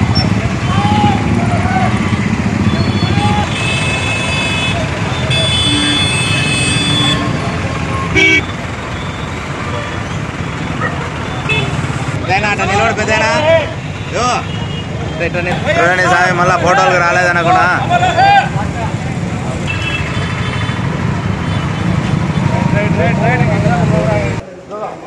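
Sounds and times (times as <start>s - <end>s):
crowd chatter: 0.0s - 21.0s
street traffic: 0.0s - 25.0s
vehicle horn: 2.6s - 7.4s, 8.0s - 8.6s, 19.6s - 20.7s.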